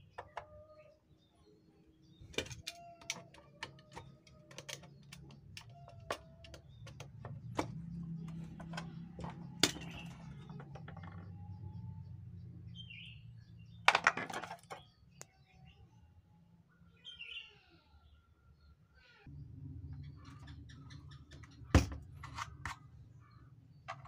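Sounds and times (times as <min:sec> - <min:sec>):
plastic clatter: 0:02.2 - 0:11.4, 0:13.9 - 0:14.8.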